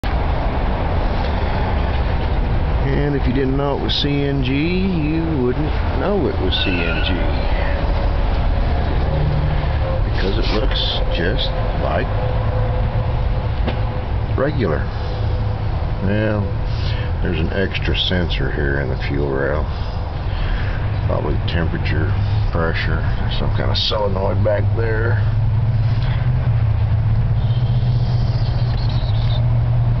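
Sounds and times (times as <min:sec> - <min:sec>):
truck engine rumbling: 0:00.0 - 0:30.0
engine hiss: 0:00.3 - 0:29.4
faint steady whine: 0:01.0 - 0:30.0
faint high chirping whine: 0:27.4 - 0:29.5.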